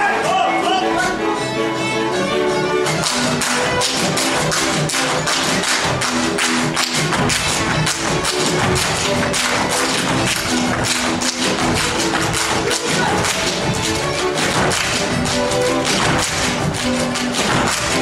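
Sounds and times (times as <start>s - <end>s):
folk string band playing: 0.0s - 18.0s
boots stamping on stage: 3.0s - 18.0s.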